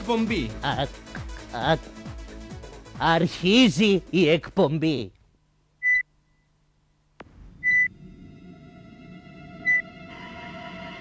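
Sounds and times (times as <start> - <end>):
short electronic beeps: 5.8 - 6.5, 7.6 - 7.9
held tone chord: 7.9 - 11.0.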